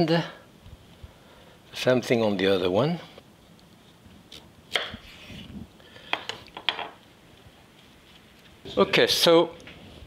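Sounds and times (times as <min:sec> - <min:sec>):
knife slicing zucchini: 0:04.3 - 0:05.6.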